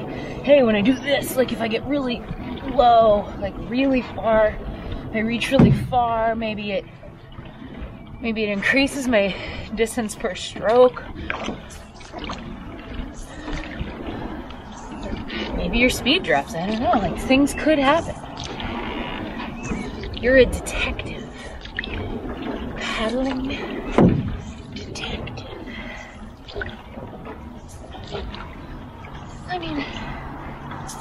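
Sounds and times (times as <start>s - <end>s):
paddle stroking through water: 0.0s - 31.0s
water splashing and trickling: 0.0s - 31.0s.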